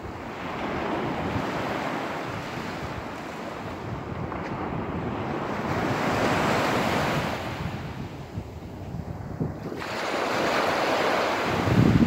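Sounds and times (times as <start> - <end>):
small waves breaking on sand: 0.0 - 12.0
wind buffeting microphone: 0.0 - 12.0.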